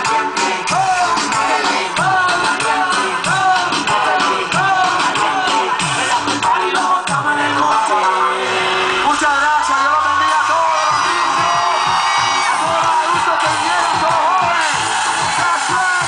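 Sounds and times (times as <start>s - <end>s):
person singing: 0.0s - 8.6s
reggaeton music over loudspeakers: 0.0s - 16.0s
crowd whooping: 7.6s - 16.0s.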